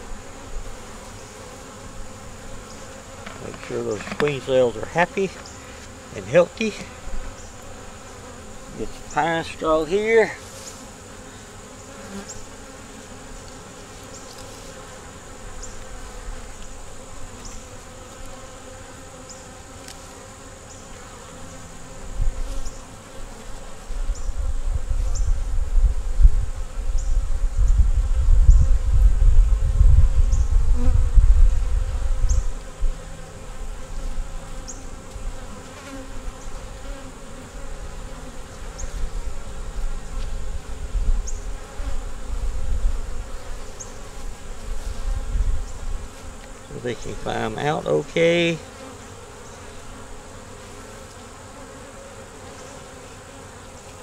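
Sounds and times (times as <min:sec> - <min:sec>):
bees buzzing: 0:00.0 - 0:54.0.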